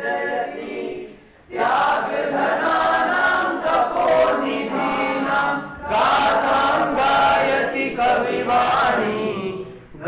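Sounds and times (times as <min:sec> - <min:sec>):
choir singing in unison: 0:00.0 - 0:10.0.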